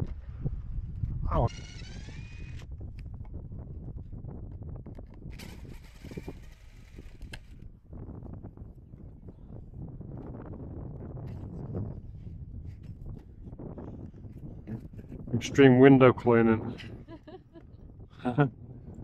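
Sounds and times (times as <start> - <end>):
cordless drill whining: 1.5 - 2.7, 5.3 - 7.6.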